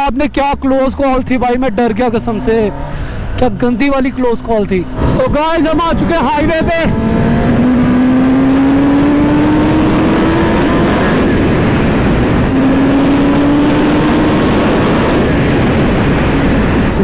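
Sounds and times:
motorcycle engine revving hard: 2.0s - 3.1s, 4.4s - 17.0s
wind rush on microphone: 2.5s - 17.0s.

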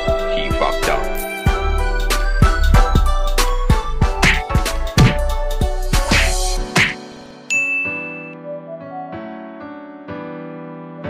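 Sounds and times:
bright ding: 7.5s - 8.4s
soft electric piano music: 7.5s - 11.0s.

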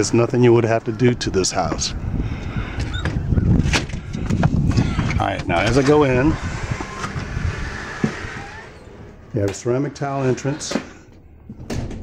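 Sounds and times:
wind noise: 0.8s - 9.2s
microphone handling rumble: 1.6s - 9.5s
glass door opening: 4.7s - 12.0s.

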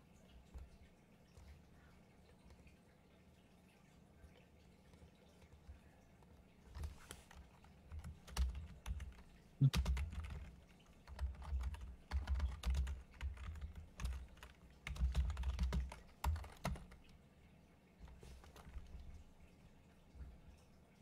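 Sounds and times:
computer keyboard typing: 4.9s - 17.2s, 18.1s - 19.2s.

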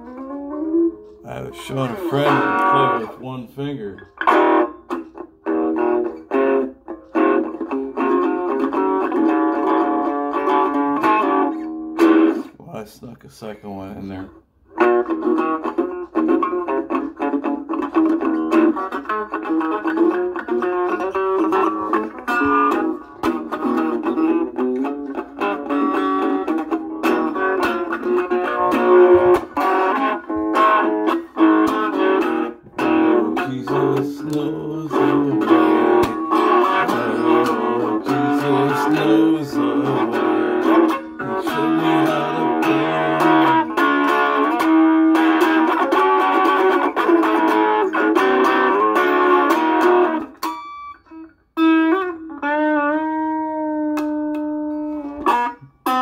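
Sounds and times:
electric guitar picked notes: 0.0s - 12.5s, 14.0s - 56.0s.

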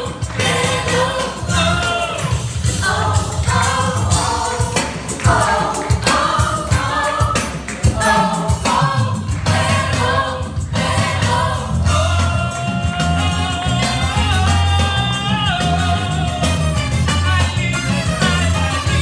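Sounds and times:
voices singing together: 0.0s - 16.7s
bass and percussion: 0.0s - 19.0s.

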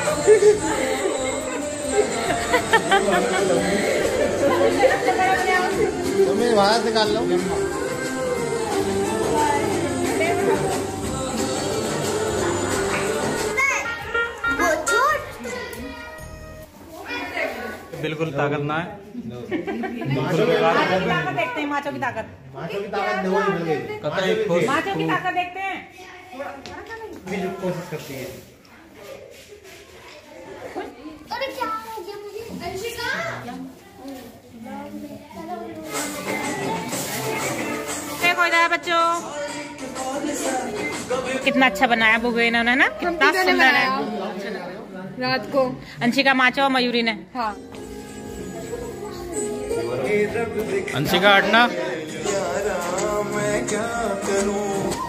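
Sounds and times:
people chattering: 0.0s - 55.0s.

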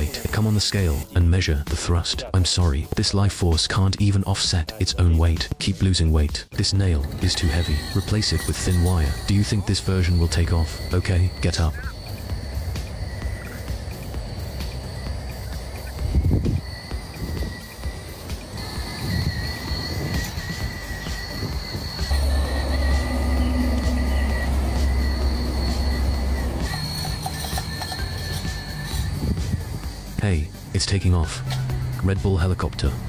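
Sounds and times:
small electric motor whining: 7.0s - 30.2s.

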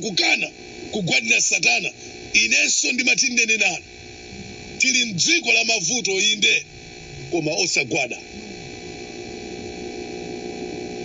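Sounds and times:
steady multi-tone hum: 0.0s - 11.0s.

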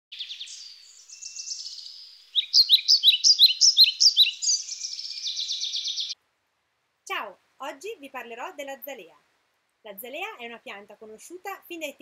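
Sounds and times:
songbird singing: 0.1s - 6.2s.

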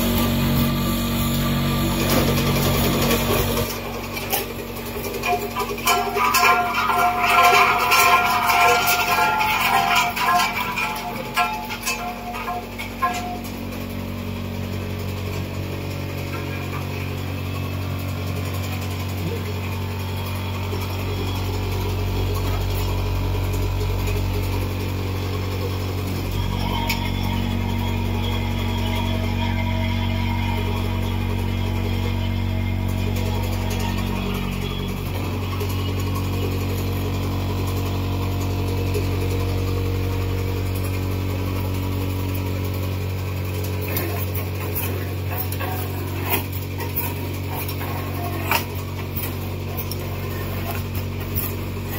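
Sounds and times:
machine mechanical hum: 0.0s - 51.9s.

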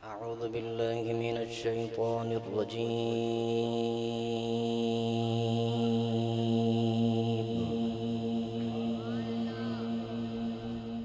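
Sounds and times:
man reciting melodically: 0.0s - 8.2s.

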